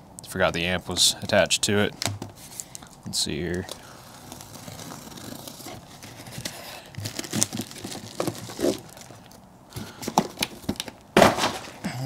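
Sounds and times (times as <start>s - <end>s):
cardboard and plastic rustling: 2.0s - 11.8s
knife slitting packing tape: 3.8s - 9.1s.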